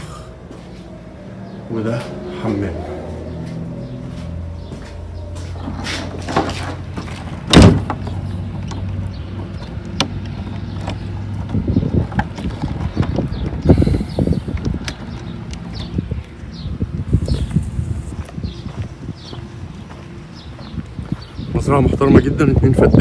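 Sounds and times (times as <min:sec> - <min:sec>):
footsteps crunching on sand: 0:01.9 - 0:07.4, 0:15.0 - 0:22.4
wooden door banging shut: 0:07.5 - 0:08.0.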